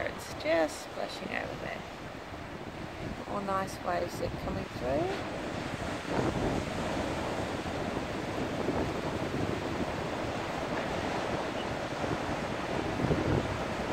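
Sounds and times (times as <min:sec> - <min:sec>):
ocean surf washing over rocks: 0:00.0 - 0:13.9
wind buffeting microphone: 0:00.0 - 0:13.9.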